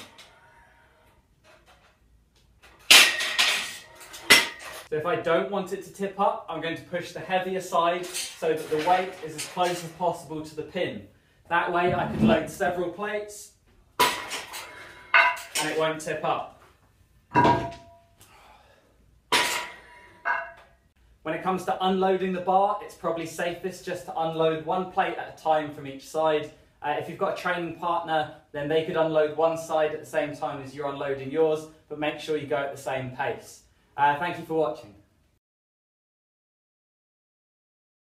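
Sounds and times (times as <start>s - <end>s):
metal weight plate clanking: 14.1s - 15.7s, 17.3s - 18.0s, 19.3s - 20.6s
metallic ring: 20.2s - 20.7s.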